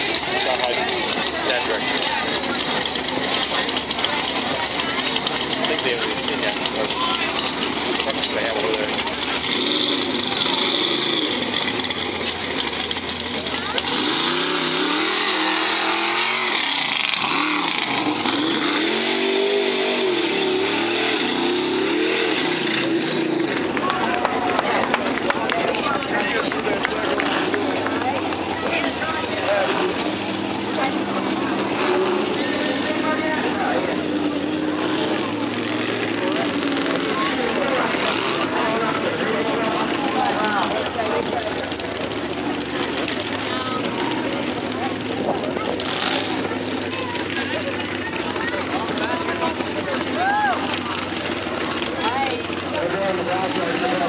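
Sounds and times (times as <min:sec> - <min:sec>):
people talking: 0:00.0 - 0:54.0
truck engine revving: 0:00.0 - 0:54.0.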